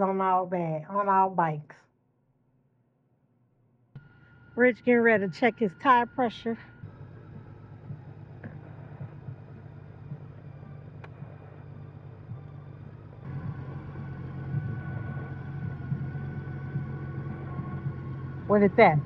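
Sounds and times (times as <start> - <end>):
vehicle engine idling: 4.0 - 19.0.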